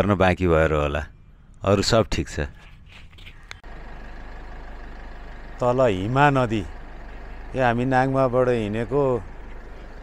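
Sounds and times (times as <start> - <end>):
road noise: 0.0 - 10.0
vehicle engine hum: 0.0 - 10.0.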